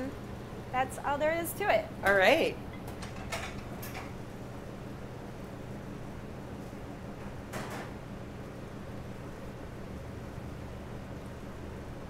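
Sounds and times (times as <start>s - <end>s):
kitchen equipment humming: 0.0s - 5.5s.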